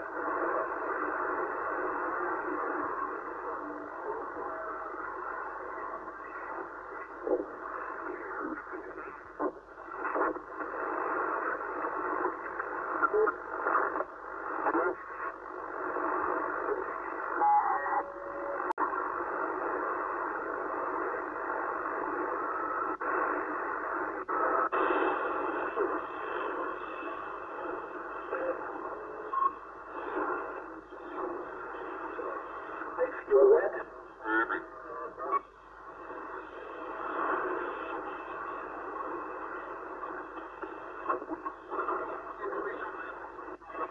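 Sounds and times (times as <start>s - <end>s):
distorted radio voices: 0.0s - 43.9s
radio static and hiss: 0.0s - 43.9s.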